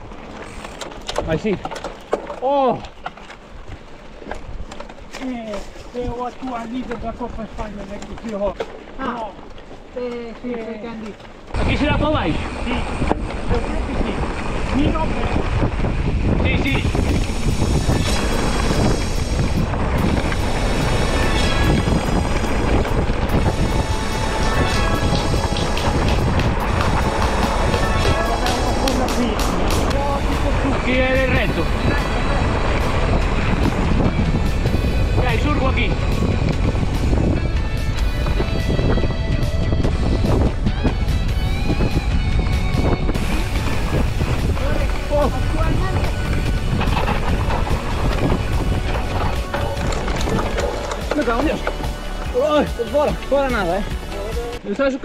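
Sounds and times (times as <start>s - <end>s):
mountain bike rattling on dirt: 0.0s - 54.8s
wind on microphone: 11.4s - 52.4s
music: 23.3s - 54.7s.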